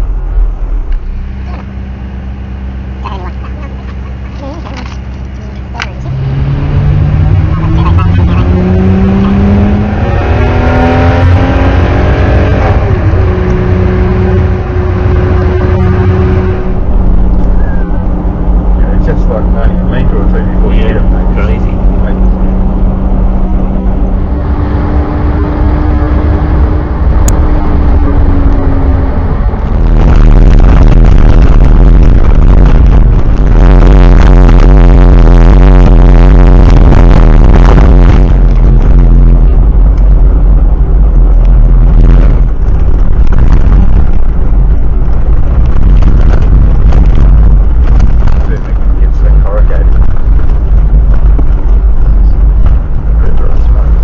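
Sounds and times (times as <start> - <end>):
vehicle engine accelerating: 0.0 - 54.0.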